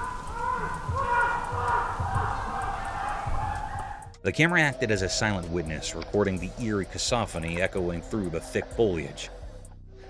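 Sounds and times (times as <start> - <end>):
short rising and falling cries: 0.0 - 4.1
low thumps: 0.0 - 4.2.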